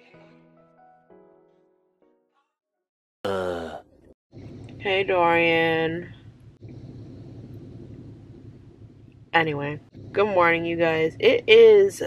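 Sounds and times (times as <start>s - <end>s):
background music: 0.0s - 2.2s.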